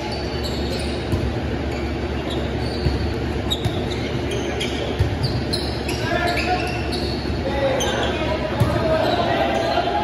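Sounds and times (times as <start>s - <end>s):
sneaker squeaks on hardwood: 0.0s - 9.2s
players calling out: 1.9s - 10.0s.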